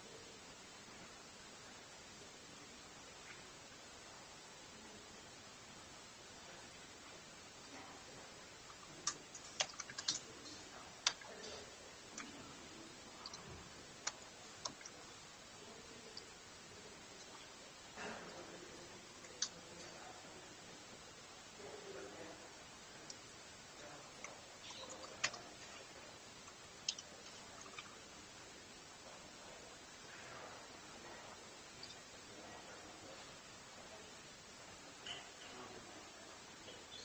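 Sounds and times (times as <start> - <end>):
low steady hiss: 0.0 - 37.0.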